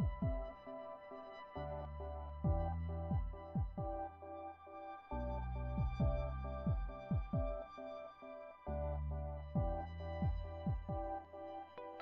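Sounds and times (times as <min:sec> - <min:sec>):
deep pitch-dropping drum hits: 0:00.0 - 0:00.5, 0:02.5 - 0:04.1, 0:05.7 - 0:07.6, 0:09.6 - 0:11.2.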